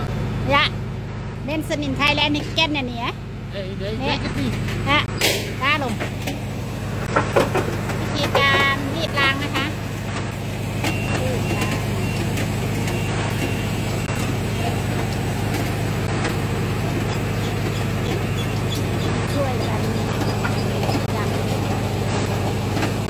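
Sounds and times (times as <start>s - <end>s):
low motor hum: 0.0s - 23.0s
voices calling out: 1.5s - 23.0s.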